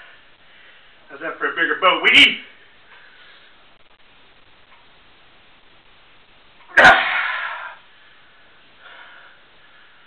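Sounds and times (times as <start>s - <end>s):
man straining grunt: 6.7s - 7.8s.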